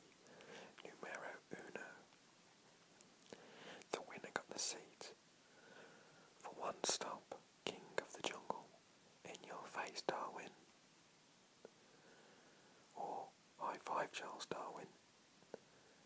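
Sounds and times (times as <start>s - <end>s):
man whispering: 0.3s - 2.1s, 3.8s - 5.2s, 6.4s - 10.6s, 12.9s - 15.0s.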